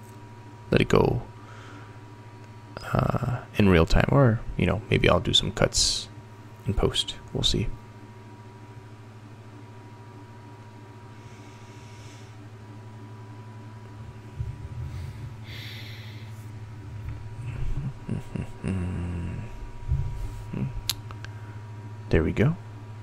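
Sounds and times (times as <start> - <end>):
low electrical hum: 0.0 - 23.0
man breathing: 1.4 - 2.0, 11.1 - 12.5, 14.3 - 16.6
mouth and throat sounds: 17.4 - 19.5.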